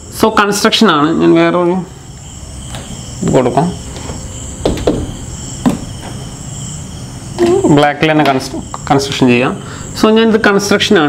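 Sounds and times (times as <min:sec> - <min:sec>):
crickets chirring: 0:00.0 - 0:11.0
short knock: 0:04.6 - 0:06.2.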